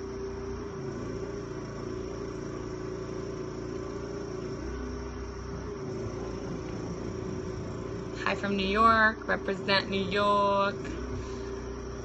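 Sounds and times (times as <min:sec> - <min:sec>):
motor humming with low rumble: 0:00.0 - 0:12.0.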